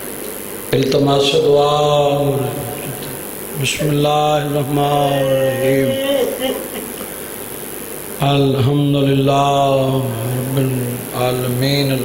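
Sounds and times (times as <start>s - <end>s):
man chanting one long note: 0.8s - 6.6s, 8.2s - 12.0s.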